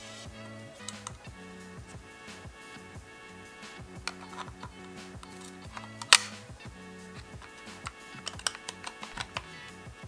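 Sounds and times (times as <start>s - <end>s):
background music with steady beat: 0.0s - 10.0s
sharp plastic clicks: 0.8s - 1.3s, 4.0s - 6.5s, 7.4s - 9.6s.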